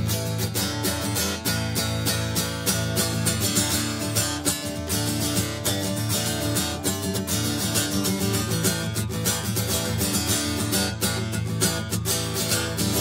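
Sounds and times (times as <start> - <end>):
acoustic guitar blues: 0.0 - 13.0.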